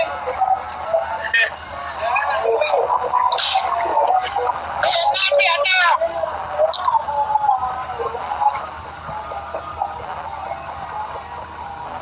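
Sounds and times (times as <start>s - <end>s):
voices talking over phone: 0.0s - 12.0s.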